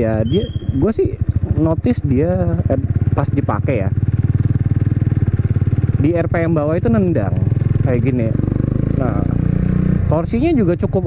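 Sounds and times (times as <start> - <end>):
motorcycle engine pulsing: 0.0 - 11.0.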